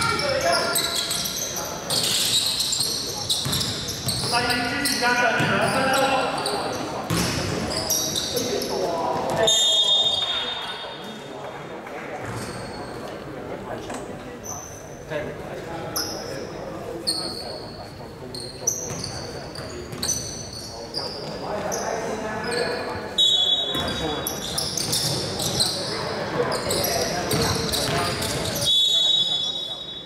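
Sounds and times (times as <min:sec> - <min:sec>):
sneakers squeaking on court: 0:00.0 - 0:11.0, 0:12.2 - 0:13.1, 0:17.1 - 0:29.3
people talking and calling out: 0:00.0 - 0:30.0
referee's whistle: 0:09.4 - 0:10.9, 0:23.2 - 0:24.0, 0:28.6 - 0:30.0.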